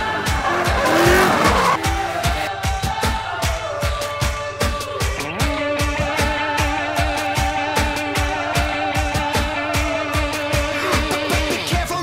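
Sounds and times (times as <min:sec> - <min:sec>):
car engine revving: 0:00.0 - 0:02.8
electronic music with beat: 0:00.0 - 0:12.0.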